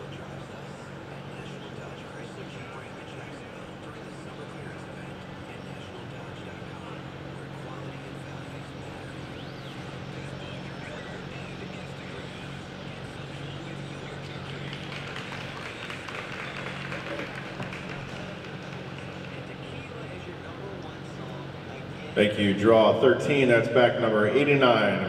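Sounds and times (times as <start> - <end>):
faint murmur of voices: 0.0 - 25.0
steady low hum: 0.0 - 25.0.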